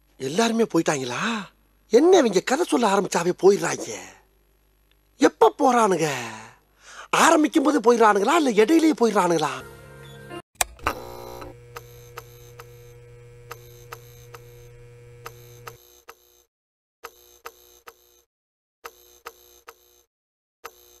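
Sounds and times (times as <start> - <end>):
low electrical hum: 10.6 - 15.8.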